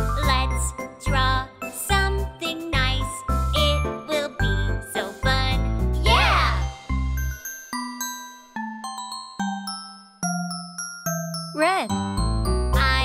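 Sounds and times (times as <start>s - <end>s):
children's song with bass: 0.0s - 6.9s, 11.6s - 13.0s.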